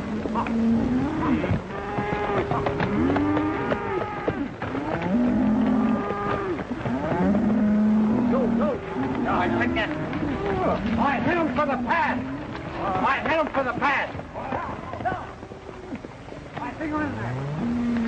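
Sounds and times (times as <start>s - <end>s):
horses galloping: 0.0s - 18.0s
cattle mooing: 0.1s - 13.1s, 17.0s - 18.0s.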